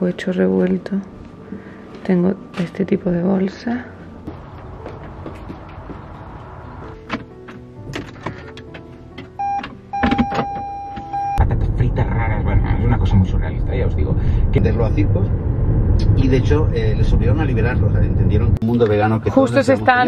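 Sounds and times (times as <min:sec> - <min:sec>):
road and engine rumble: 0:00.0 - 0:10.5, 0:11.4 - 0:20.0
held electronic tone: 0:09.4 - 0:11.5
podcast voice over car speakers: 0:11.4 - 0:15.4, 0:16.0 - 0:20.0.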